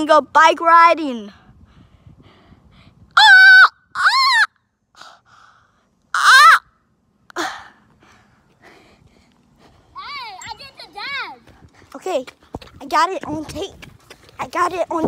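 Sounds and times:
child shouting high-pitched: 10.0 - 11.4.

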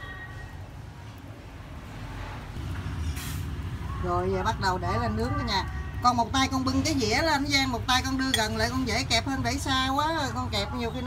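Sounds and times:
short hiss: 3.0 - 3.6.

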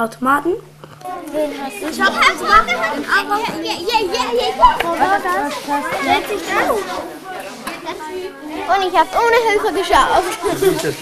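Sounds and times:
children talking and calling out: 0.8 - 11.0.

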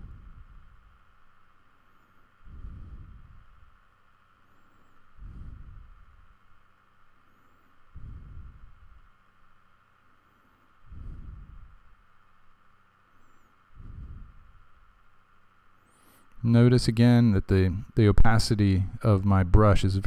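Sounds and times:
soft puffs of breath: 0.0 - 9.3, 10.0 - 12.5, 13.1 - 16.4
faint steady hum: 0.0 - 20.0.

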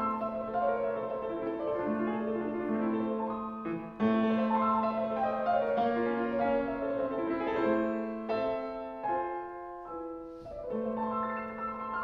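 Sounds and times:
solo grand piano: 0.0 - 12.0.

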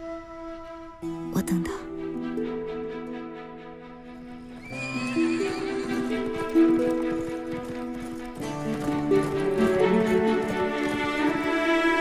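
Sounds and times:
background music with held notes: 0.0 - 12.0
hoofbeats: 4.5 - 12.0
horse whinnying: 4.6 - 7.9.

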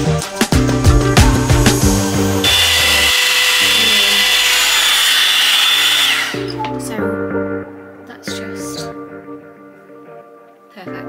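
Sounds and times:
background music with a beat: 0.0 - 2.5
hot air brush whining: 1.2 - 6.6.

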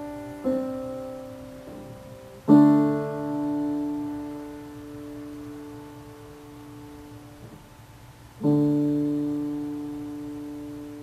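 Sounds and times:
piano chord ringing: 0.0 - 11.0.

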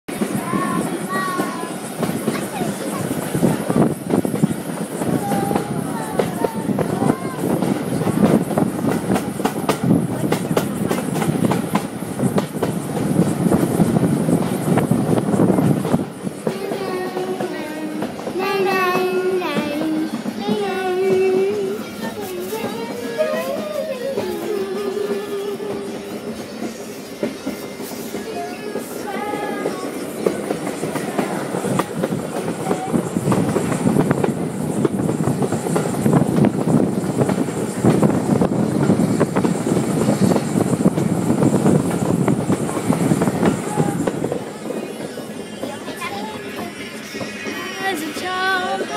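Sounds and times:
train wheels clattering on rails: 0.1 - 48.9
voices: 0.1 - 48.9.

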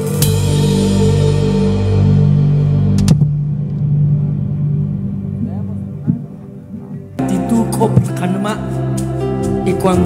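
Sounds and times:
cymbal crash: 0.0 - 5.0
band holding low chord: 0.0 - 10.0.

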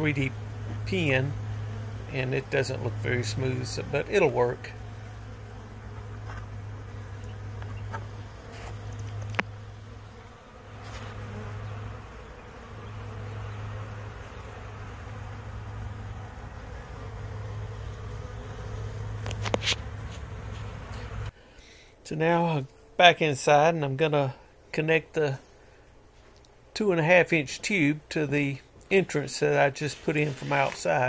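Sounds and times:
bees buzzing: 0.0 - 21.4, 29.1 - 31.0.

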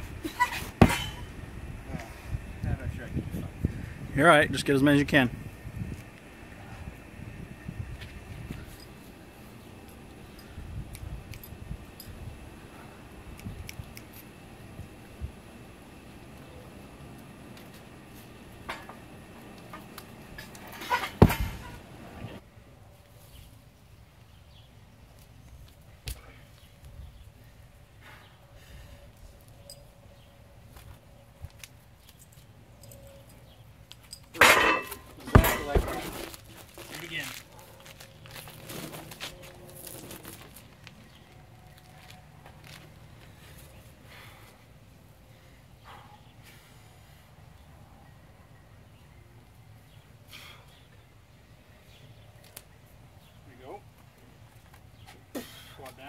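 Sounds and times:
heavy stone thuds on wood: 21.1 - 21.7, 35.3 - 36.1.

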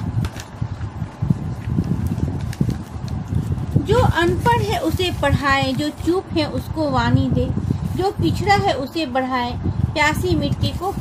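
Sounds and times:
woman speaking: 3.8 - 11.0.

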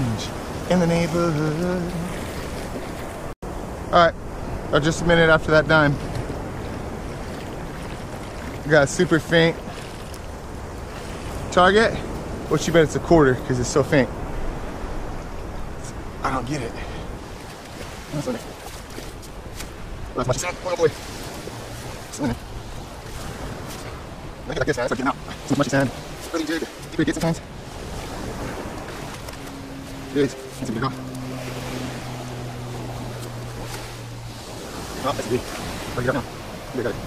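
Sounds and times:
ocean surf: 0.0 - 37.0
wind: 0.0 - 37.0
metal detector drone: 28.3 - 35.1.

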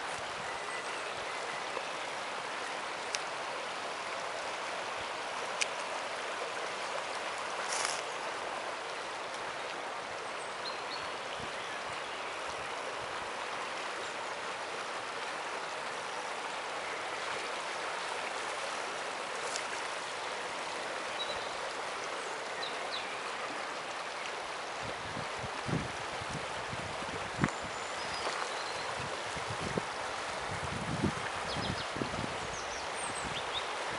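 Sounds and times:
river water flowing: 0.0 - 33.9.

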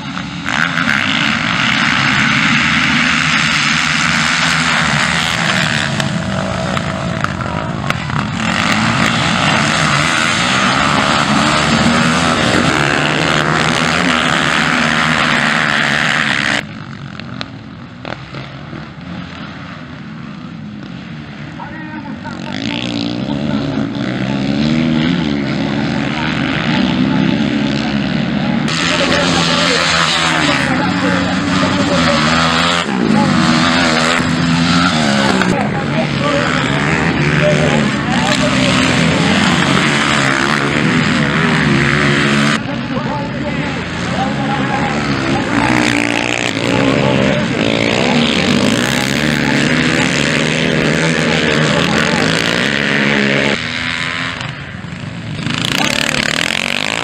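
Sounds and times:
dirt bike engines racing: 0.0 - 57.0.

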